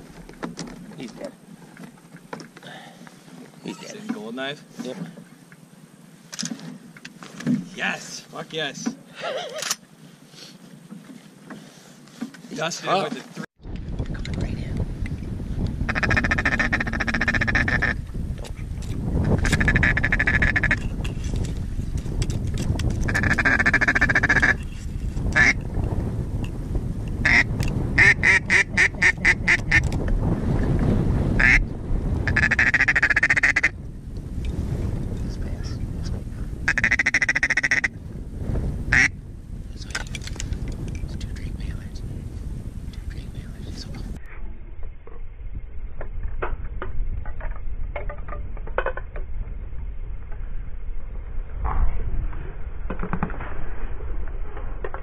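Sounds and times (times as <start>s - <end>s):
wind rumble on microphone: 13.6s - 55.0s
duck quacking: 15.9s - 18.0s, 23.1s - 24.6s, 25.4s - 25.6s, 27.2s - 29.8s, 31.4s - 31.6s, 32.3s - 33.7s, 36.7s - 37.9s.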